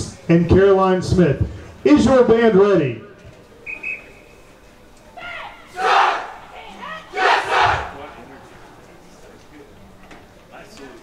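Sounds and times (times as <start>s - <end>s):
band members shouting together: 5.2s - 8.1s.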